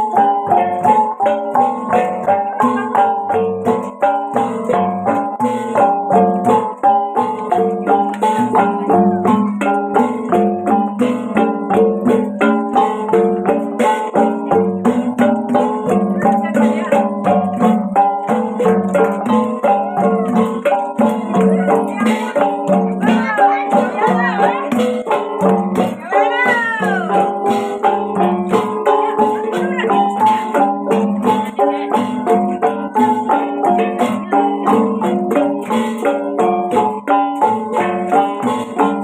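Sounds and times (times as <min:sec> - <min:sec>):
gong ensemble interlocking rhythm: 0:00.0 - 0:39.0.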